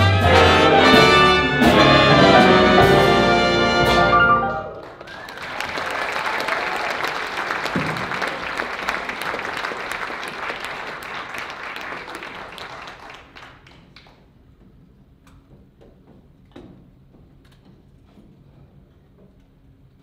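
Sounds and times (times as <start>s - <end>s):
audience applauding: 4.7s - 14.2s.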